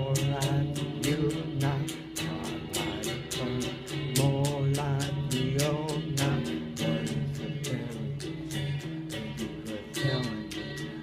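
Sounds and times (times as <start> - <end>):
guitar music: 0.0 - 11.0
man singing: 0.0 - 11.0
sharp steady beat: 0.0 - 11.0.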